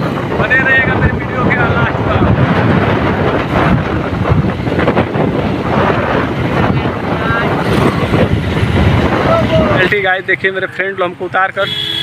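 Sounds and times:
wind buffeting microphone: 0.0s - 11.4s
motorbike engine and road noise: 0.0s - 12.0s.

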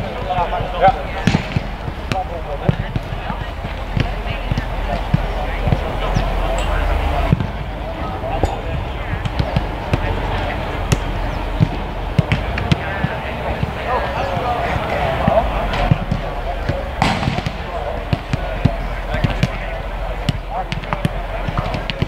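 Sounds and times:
boots kicking footballs: 0.0s - 6.5s, 8.4s - 22.0s
background voices: 0.0s - 22.0s.

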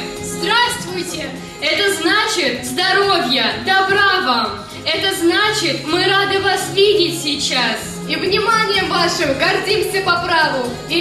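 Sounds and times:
background music with held notes: 0.0s - 11.0s
woman reciting into a microphone: 0.0s - 11.0s.

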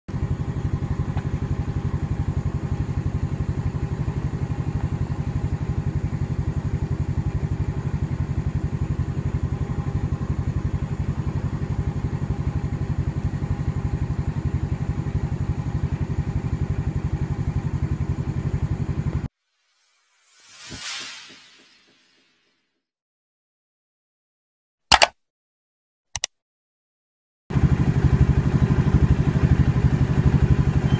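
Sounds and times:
scooter engine idling: 0.1s - 19.3s, 27.5s - 30.9s.

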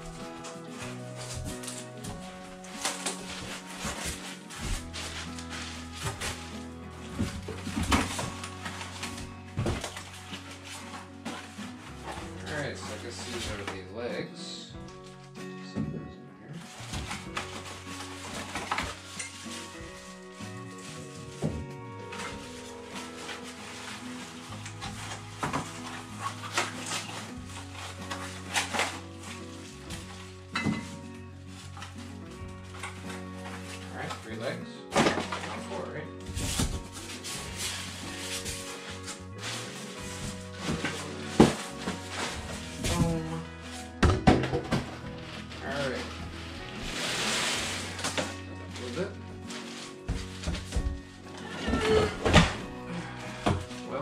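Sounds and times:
styrofoam packing pieces handled: 0.0s - 14.0s, 16.6s - 54.0s
background music: 0.0s - 54.0s
scraping rustle: 0.1s - 13.7s, 16.7s - 34.3s, 35.2s - 44.0s, 44.8s - 54.0s.

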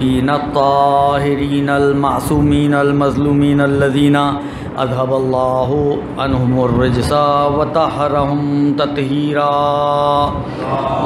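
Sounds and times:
man chanting: 0.0s - 11.0s
breath: 4.4s - 4.8s.

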